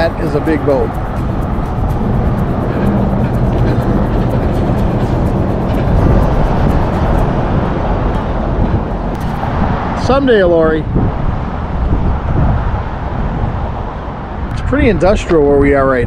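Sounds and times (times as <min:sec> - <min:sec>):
car engine and tyres rumbling: 0:00.0 - 0:15.4.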